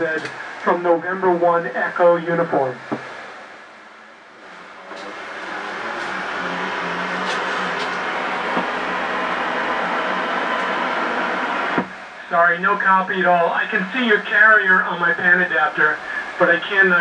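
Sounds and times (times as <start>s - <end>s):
radio static hiss: 0.0s - 17.0s.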